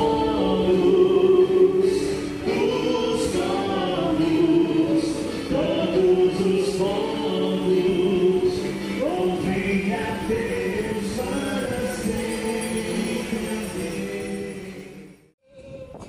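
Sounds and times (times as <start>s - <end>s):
choir singing a hymn: 0.0s - 15.7s.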